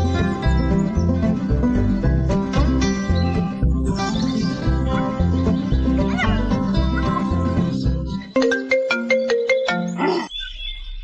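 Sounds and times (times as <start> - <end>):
music with steady bass beat: 0.0 - 8.3
phone ringtone plucked notes: 8.3 - 10.0.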